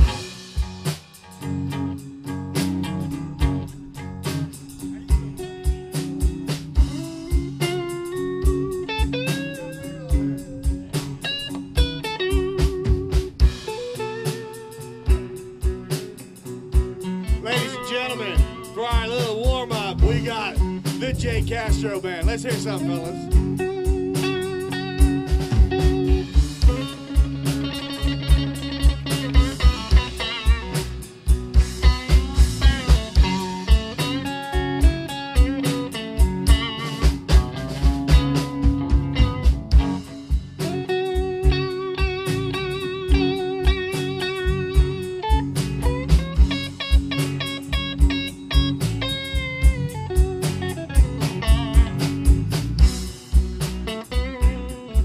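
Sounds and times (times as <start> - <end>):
bass guitar: 0.0 - 55.0
drum kit beat: 0.0 - 55.0
electric guitar lead: 0.0 - 55.0.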